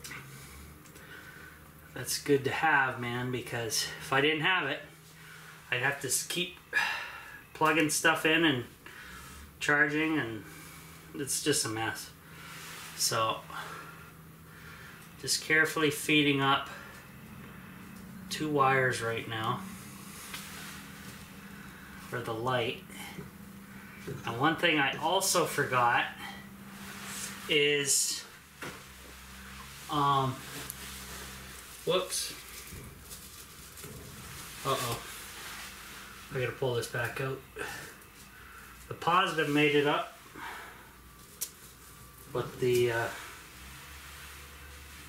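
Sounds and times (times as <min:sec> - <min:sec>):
steady low hum: 0:00.0 - 0:45.0
soft rustle of wires: 0:07.6 - 0:45.0.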